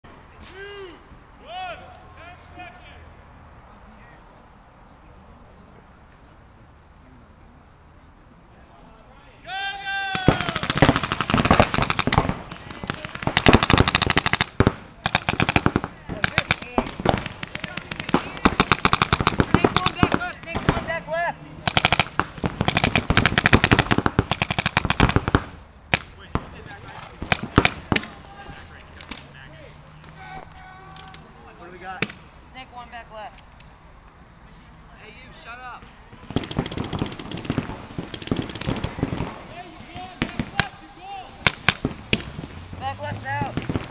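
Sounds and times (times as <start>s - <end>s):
players calling out: 0.2s - 4.5s, 8.3s - 24.4s, 25.0s - 43.9s
paintball markers firing: 10.1s - 20.9s, 21.6s - 28.2s, 36.2s - 39.4s, 41.4s - 42.4s.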